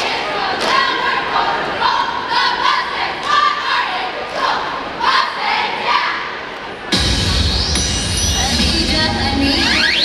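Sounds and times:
cheerleaders shouting a chant: 0.0s - 6.9s.

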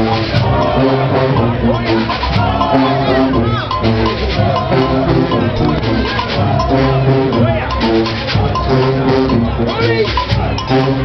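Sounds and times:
street band drums and cowbells: 0.0s - 11.0s.

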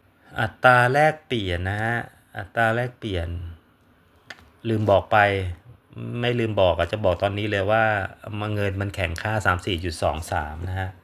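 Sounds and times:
man speaking: 0.3s - 3.6s, 4.6s - 11.0s.

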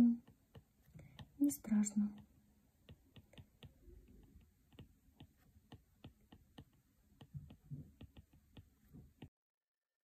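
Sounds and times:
stylus tip tapping glass screen: 0.0s - 9.3s.

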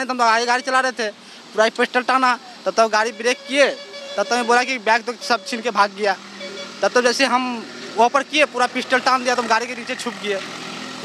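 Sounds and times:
man speaking: 0.0s - 10.4s
steady background noise: 0.0s - 11.0s.

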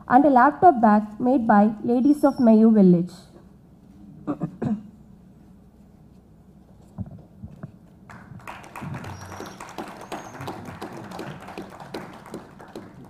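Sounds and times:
audience clapping: 8.1s - 13.0s.

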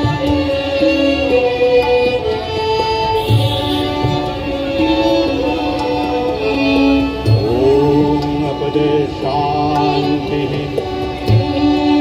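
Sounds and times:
tabla drumming: 0.0s - 12.0s
violin ensemble playing: 0.0s - 12.0s
man singing through microphone: 6.9s - 12.0s.

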